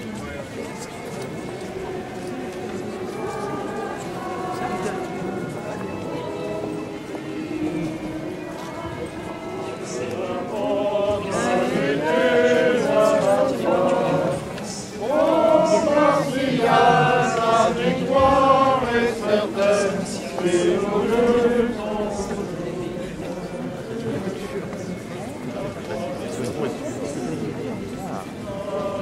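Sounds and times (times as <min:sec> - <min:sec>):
crowd singing a hymn: 0:00.4 - 0:29.0.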